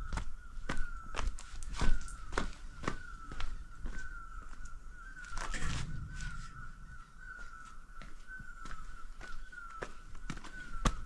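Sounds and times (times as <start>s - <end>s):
footsteps on forest trail: 0.0s - 11.0s.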